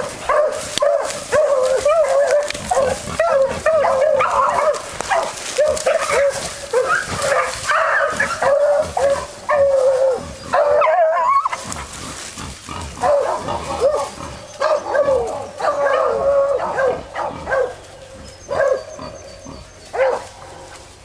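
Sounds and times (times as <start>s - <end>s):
dog baying: 0.0s - 11.7s, 13.0s - 17.8s, 18.4s - 20.6s.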